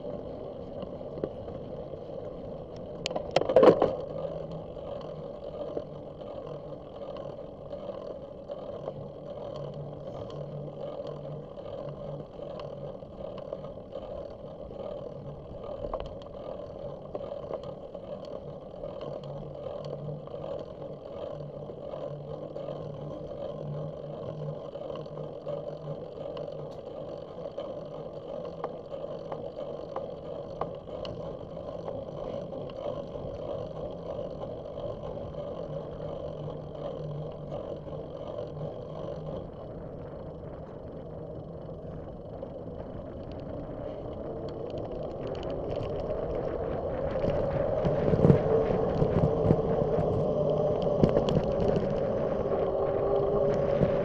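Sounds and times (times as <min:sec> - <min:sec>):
faint ticks: 0:00.0 - 0:54.0
low hum: 0:00.0 - 0:54.0
tyre and wind noise: 0:00.0 - 0:54.0.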